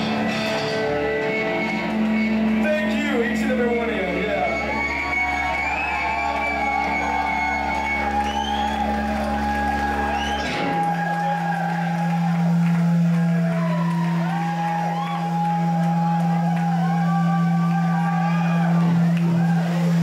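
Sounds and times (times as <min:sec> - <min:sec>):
crowd shouting and whooping: 0:00.0 - 0:20.0
electric guitars and bass droning: 0:00.0 - 0:20.0.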